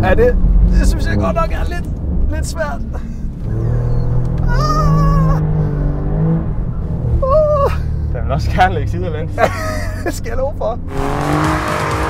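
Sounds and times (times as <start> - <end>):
car engine droning under load: 0.0 - 12.0.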